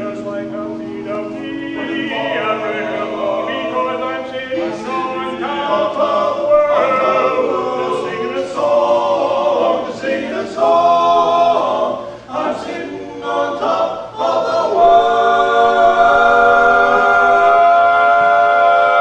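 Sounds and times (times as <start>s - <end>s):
a cappella choir singing: 0.0s - 19.0s.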